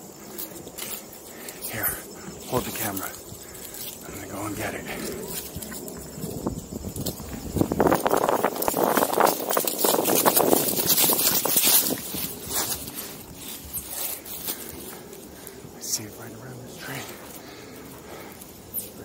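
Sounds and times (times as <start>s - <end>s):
footsteps crunching through leaves: 0.0s - 19.0s.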